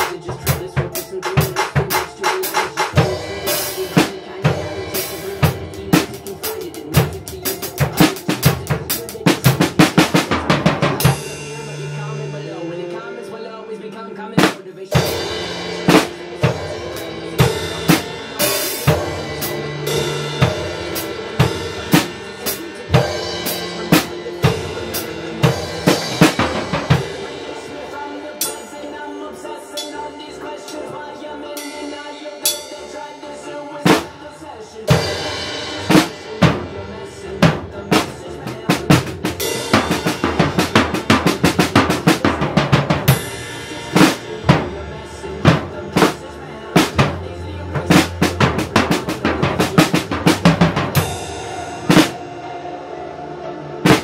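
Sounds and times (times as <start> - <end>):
acoustic drum kit playing: 0.0 - 13.2, 14.3 - 54.0
recorded backing music: 0.0 - 54.0.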